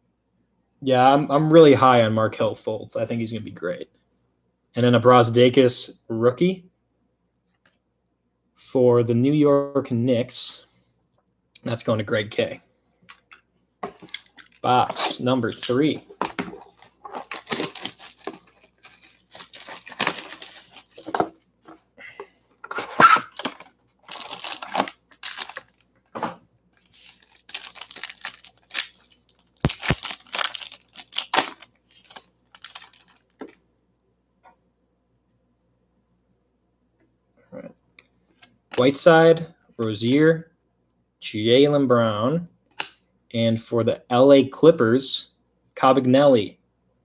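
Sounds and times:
plastic wrap tearing and crinkling: 16.4 - 21.2, 22.8 - 25.9, 26.8 - 33.6.

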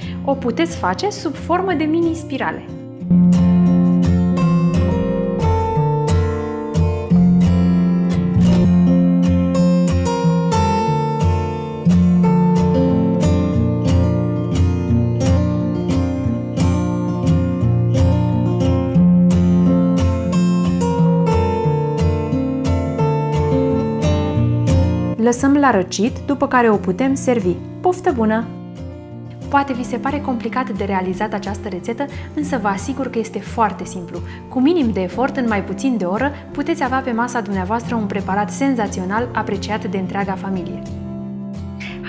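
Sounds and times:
acoustic guitar music: 0.0 - 42.0.

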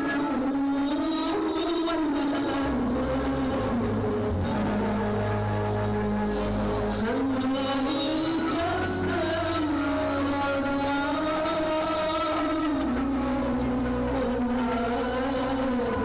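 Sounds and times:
slow belly-dance music: 0.0 - 16.0.

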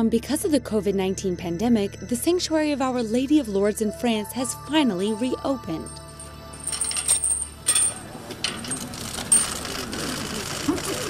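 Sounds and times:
chain and padlock rattling: 5.8 - 9.8
metal gate pushed open: 6.6 - 10.0.

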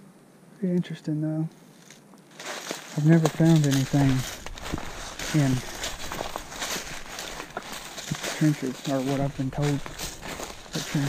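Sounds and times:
footsteps on dry leaves: 1.8 - 11.0.

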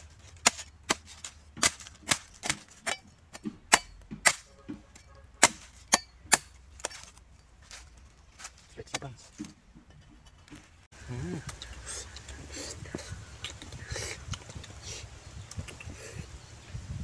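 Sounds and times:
machete chopping coconut husk: 0.0 - 9.5.

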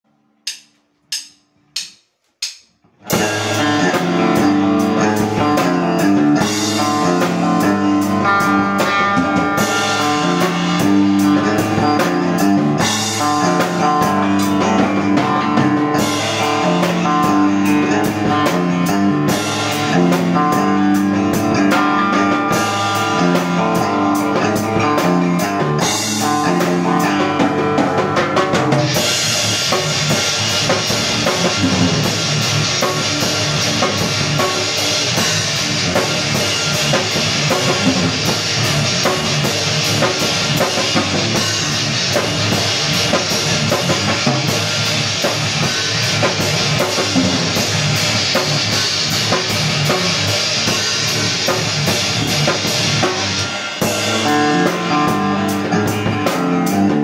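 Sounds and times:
drum kit: 0.4 - 57.0
electric guitar through amp: 3.0 - 57.0.

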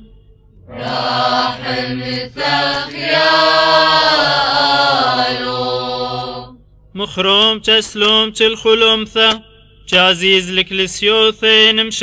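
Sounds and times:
steady low drone note: 0.0 - 7.0
voices chanting held notes: 0.7 - 6.6.

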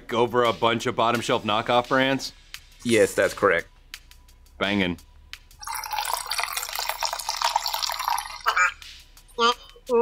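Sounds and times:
soda pouring into plastic pitcher: 5.6 - 8.5.

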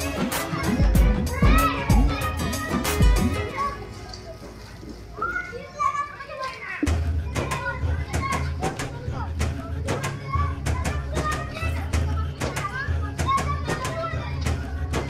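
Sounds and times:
children shouting: 0.0 - 15.0
music with deep bass thump: 6.9 - 15.0.

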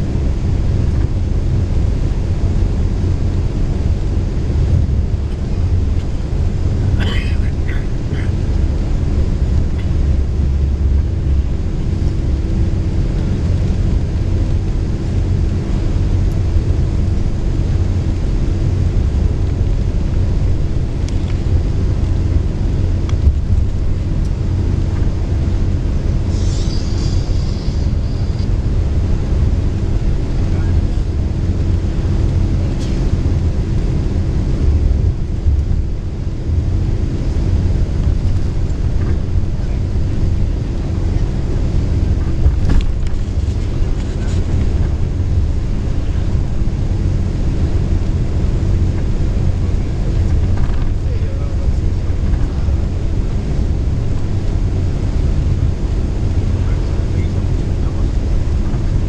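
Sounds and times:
constant hum: 0.0 - 59.0
engine and road rumble: 0.0 - 59.0.

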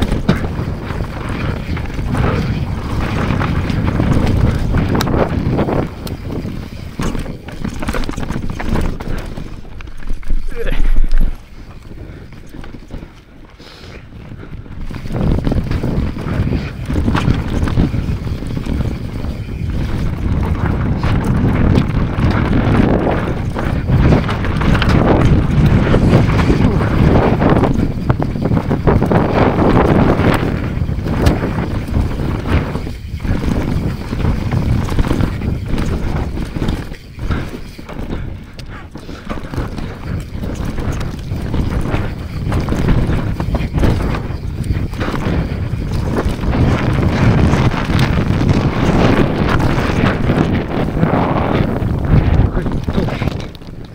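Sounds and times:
bike rattling over stones: 0.0 - 53.9
bike tyres rolling on dirt: 0.0 - 53.9
wind buffeting microphone: 0.0 - 53.9.

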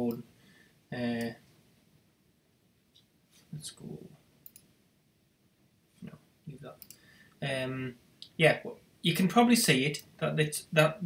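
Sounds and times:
computer mouse click: 4.4 - 4.7.

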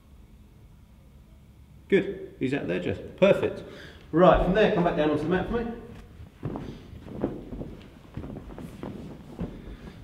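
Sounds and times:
light footsteps: 4.3 - 10.0
soft thuds on foam mat: 6.0 - 10.0.

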